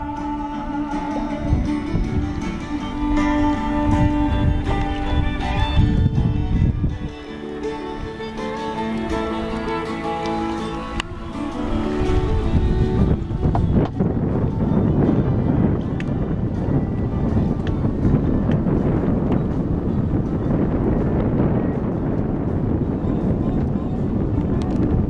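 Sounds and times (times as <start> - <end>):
music: 0.0 - 25.0
wind buffeting microphone: 0.0 - 25.0.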